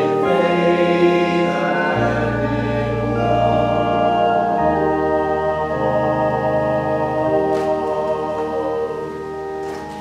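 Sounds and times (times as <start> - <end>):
choir-like church music: 0.0 - 10.0.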